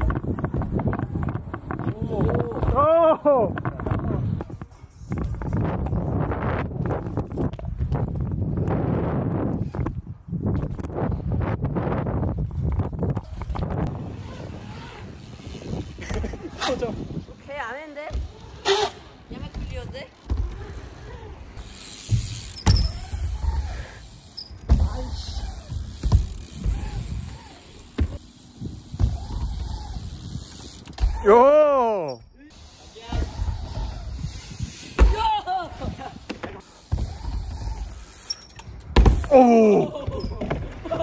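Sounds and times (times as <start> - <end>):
wind on microphone: 0.0 - 17.5, 33.1 - 35.2
wheels thudding on ramps: 0.0 - 31.6, 32.5 - 41.0
bike tyres rumbling on ramps: 0.0 - 41.0.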